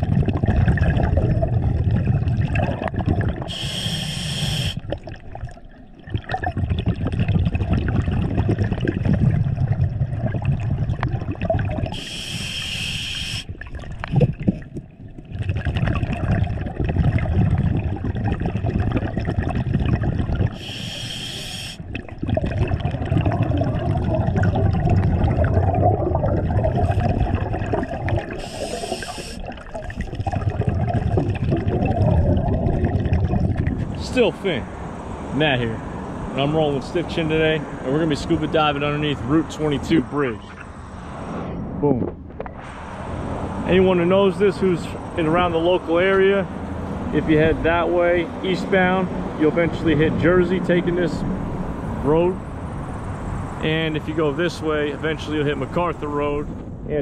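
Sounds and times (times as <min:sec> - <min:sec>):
rumble of exhaled bubbles: 0:00.0 - 0:12.6, 0:13.5 - 0:34.7
hissing regulator inhalation: 0:03.4 - 0:04.8, 0:11.9 - 0:13.5, 0:20.5 - 0:22.0, 0:28.3 - 0:30.3.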